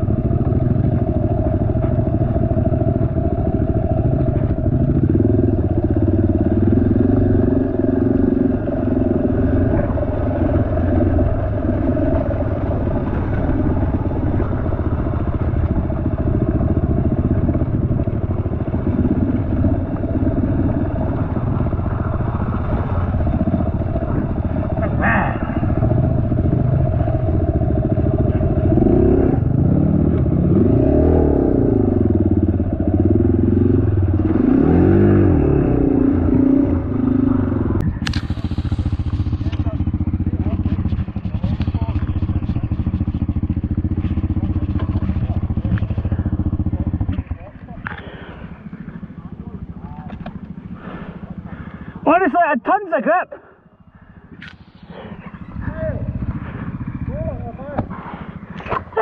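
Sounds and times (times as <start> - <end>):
dirt bike engine revving: 0.0 - 53.0, 53.7 - 59.0
sharp crack: 37.8 - 42.6.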